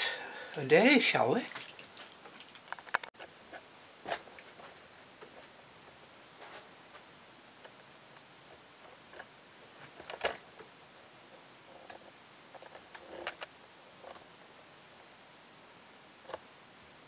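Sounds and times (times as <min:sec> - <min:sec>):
faint background hiss: 0:00.0 - 0:17.0
handling noises: 0:00.5 - 0:14.3.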